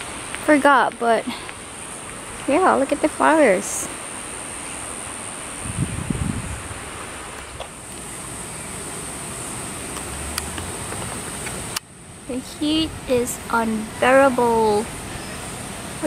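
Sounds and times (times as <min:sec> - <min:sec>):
broad hiss: 0:00.0 - 0:16.0.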